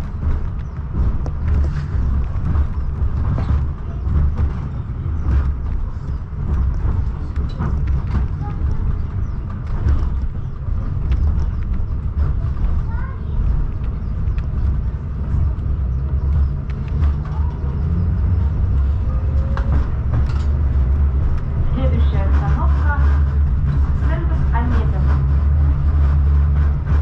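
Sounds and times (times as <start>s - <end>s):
tram rumbling on rails: 0.0s - 27.0s.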